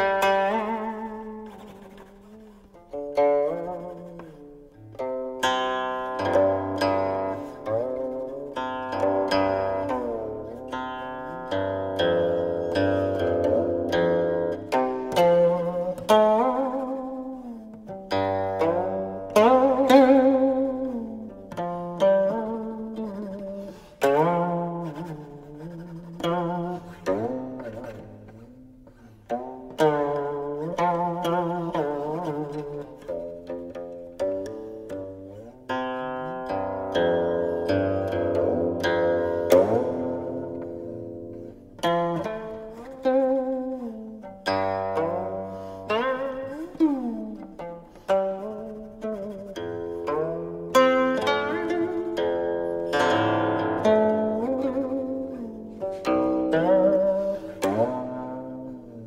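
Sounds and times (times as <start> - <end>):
plucked zither notes sliding: 0.0 - 59.0.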